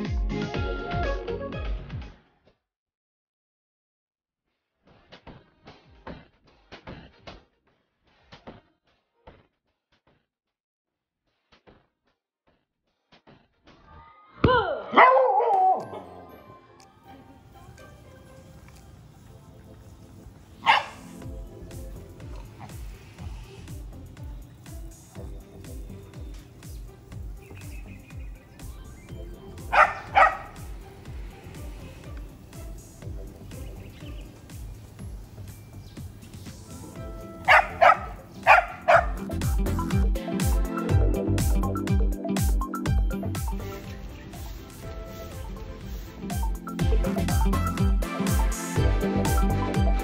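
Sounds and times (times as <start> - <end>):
dog barking: 14.8 - 16.1, 20.6 - 21.2, 29.7 - 30.7, 37.4 - 39.2.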